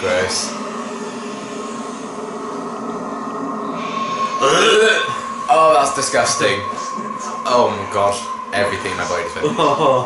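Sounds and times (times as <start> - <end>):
dense drone with sustained tones: 0.0 - 10.0.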